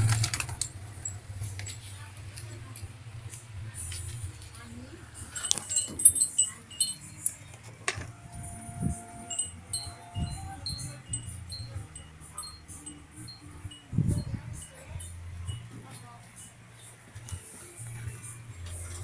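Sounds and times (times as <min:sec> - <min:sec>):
light chimes tinkling: 0:00.0 - 0:02.6, 0:03.8 - 0:19.0
low steady hum: 0:00.0 - 0:19.0.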